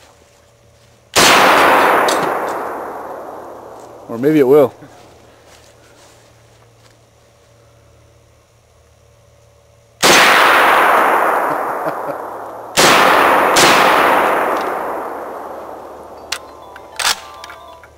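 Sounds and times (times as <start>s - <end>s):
rifle shots with echo: 1.2s - 4.9s, 10.0s - 17.2s.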